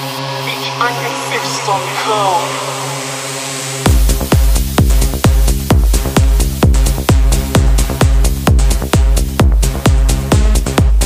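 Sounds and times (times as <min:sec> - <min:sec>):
sustained synth drone: 0:00.0 - 0:06.4
gliding voice-like synth sounds: 0:00.3 - 0:03.4.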